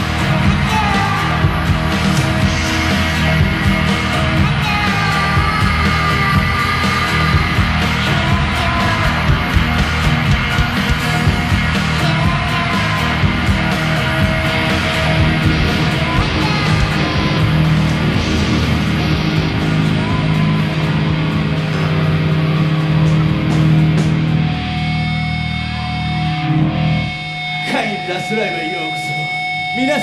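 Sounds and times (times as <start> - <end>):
rock band playing live: 0.0 - 30.0
held guitar notes ringing: 7.5 - 30.0.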